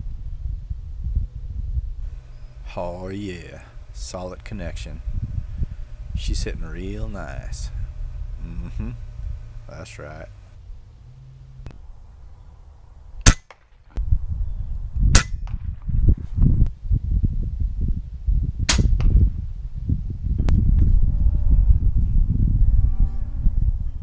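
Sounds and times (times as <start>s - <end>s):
steady low rumble: 0.0s - 24.0s
air rifle shots: 13.2s - 13.8s, 15.1s - 15.9s, 18.7s - 19.2s.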